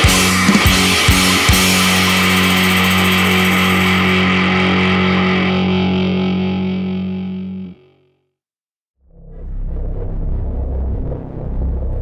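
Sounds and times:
distorted electric guitar chord: 0.0s - 8.1s.

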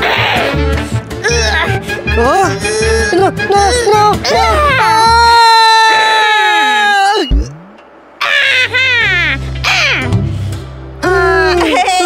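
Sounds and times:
cartoon background music: 0.0s - 5.3s
cartoon character wailing: 2.6s - 7.3s, 8.2s - 10.2s.

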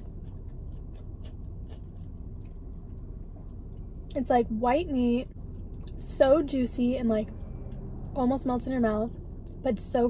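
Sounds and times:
person chewing crispy chicken: 0.0s - 4.1s
low rumble: 0.0s - 10.0s.

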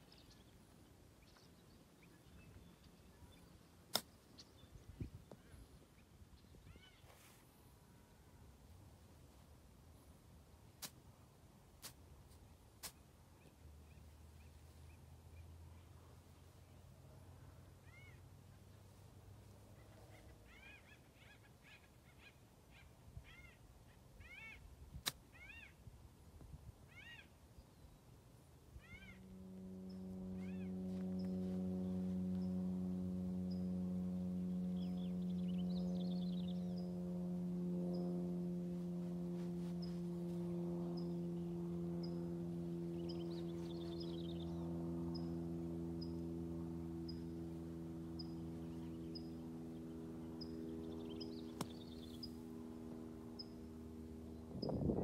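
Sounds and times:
low-pitched motor drone: 28.6s - 55.0s
birds chirping: 28.8s - 55.0s.

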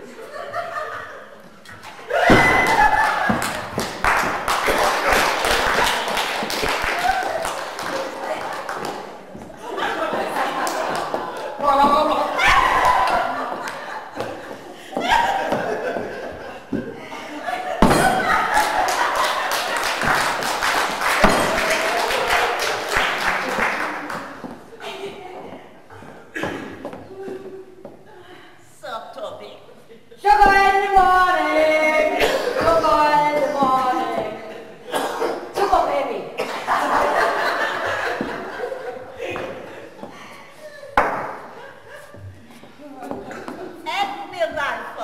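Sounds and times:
audience laughing loudly: 0.0s - 1.4s, 2.0s - 3.8s, 9.6s - 20.4s, 36.4s - 40.0s
scattered clapping: 2.6s - 9.2s, 10.0s - 11.6s, 18.4s - 24.4s
heavy thumps: 17.8s - 18.4s.

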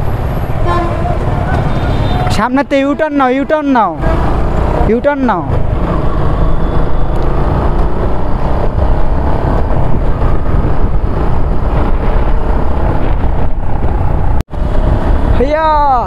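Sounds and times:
wind and road noise: 0.0s - 16.0s.

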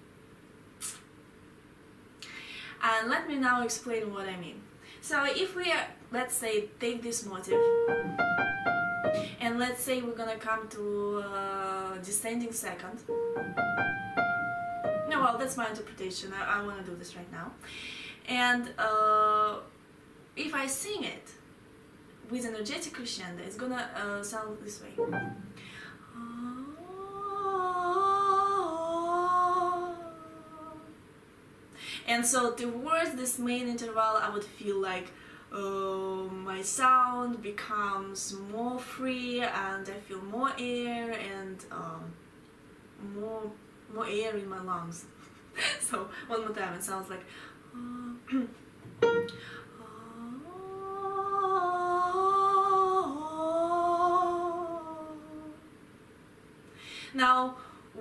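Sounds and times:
piano note: 7.5s - 9.4s, 13.1s - 15.4s, 25.0s - 25.7s, 48.9s - 49.5s
woman humming a melody: 7.5s - 9.4s, 13.1s - 15.4s, 26.1s - 30.9s, 47.8s - 55.7s.

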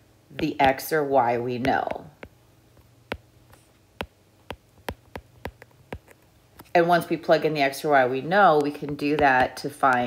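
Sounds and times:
stylus tapping on glass screen: 1.6s - 6.2s.

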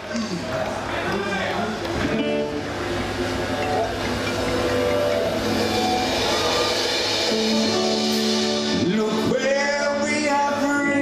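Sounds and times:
live reggae band playing: 0.0s - 11.0s
stage and crowd noise hiss: 0.0s - 11.0s.

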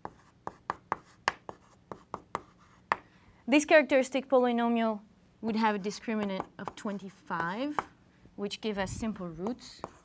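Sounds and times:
chalk scratching: 0.0s - 3.0s, 9.4s - 10.0s
chalk tapping on blackboard: 0.0s - 3.1s, 6.2s - 7.9s, 9.4s - 10.0s.

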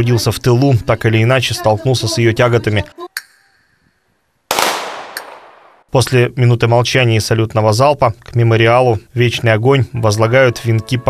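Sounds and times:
gunfire crack with echo: 4.5s - 5.9s.

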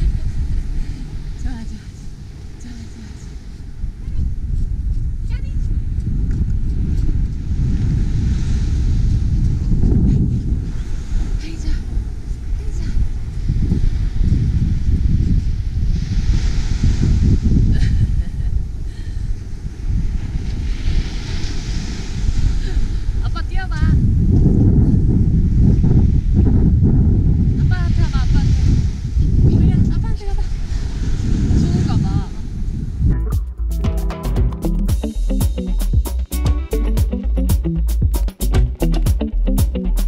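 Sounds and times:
ocean surf washing: 0.0s - 5.2s, 6.8s - 23.8s, 27.4s - 33.2s
wind buffeting microphone: 0.0s - 33.4s.

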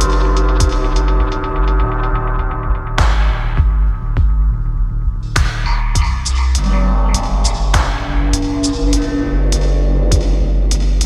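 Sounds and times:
deep sub-bass line: 0.0s - 11.0s
sharp drum strikes: 5.4s - 9.1s
held tone: 6.0s - 11.0s.

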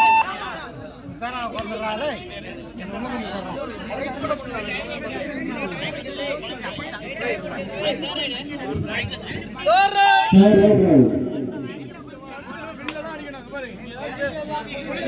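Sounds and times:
crowd chatter and calling out: 0.0s - 15.0s.

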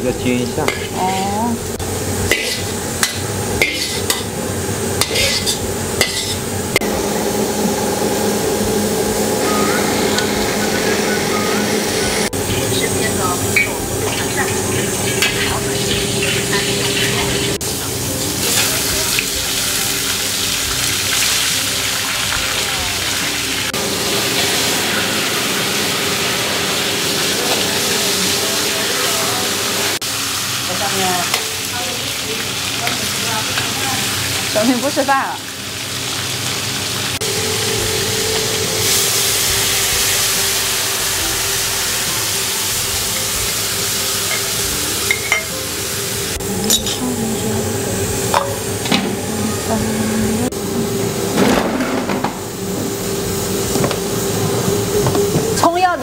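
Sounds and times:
metal spatula scraping wok: 0.6s - 1.4s, 2.3s - 4.3s, 5.0s - 6.4s, 13.6s - 17.6s
fish sizzling in hot oil: 0.7s - 9.3s, 12.2s - 47.1s.

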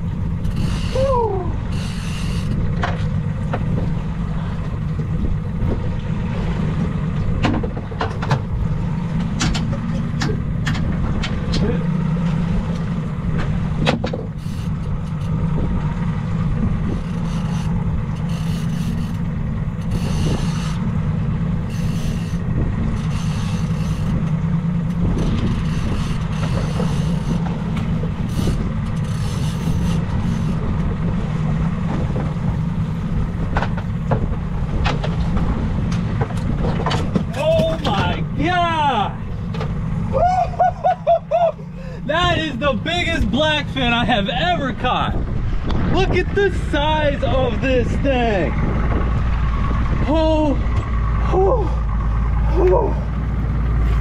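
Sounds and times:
outboard motor running: 0.0s - 54.0s.

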